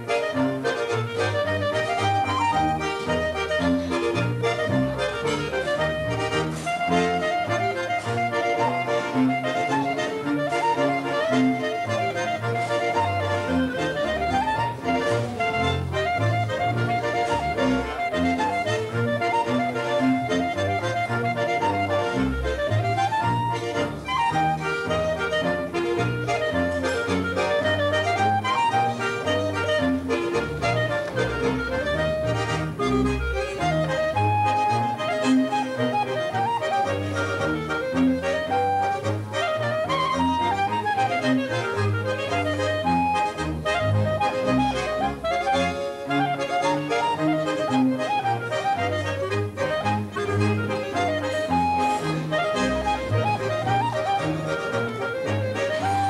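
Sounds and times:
button accordion playing dance tune: 0:00.0 - 0:56.0.

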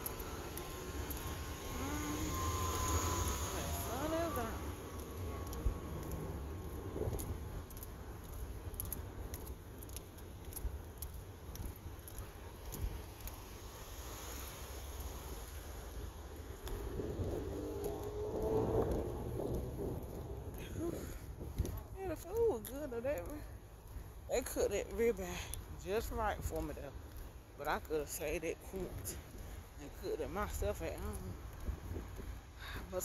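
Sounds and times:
low rumble: 0:00.0 - 0:13.8, 0:14.9 - 0:22.1.

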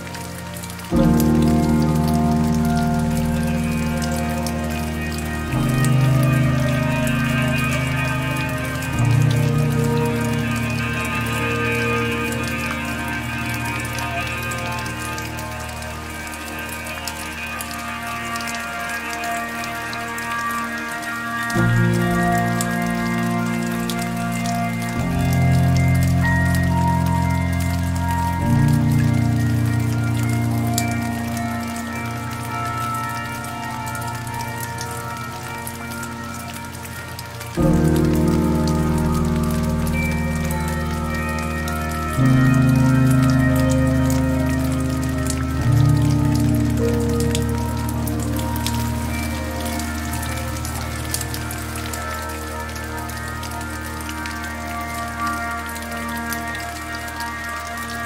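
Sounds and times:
rain patter: 0:00.0 - 0:58.0
slow soft piano music: 0:00.0 - 0:58.0.

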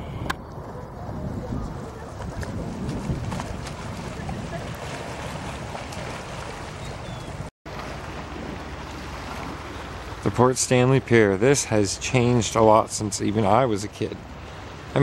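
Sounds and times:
wind buffeting microphone: 0:00.0 - 0:10.4
waves lapping against rocks: 0:00.6 - 0:15.0.

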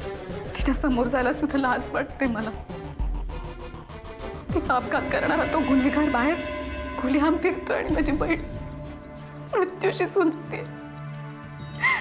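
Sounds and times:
soft background music: 0:00.0 - 0:12.0
woman sobbing: 0:11.8 - 0:12.0.

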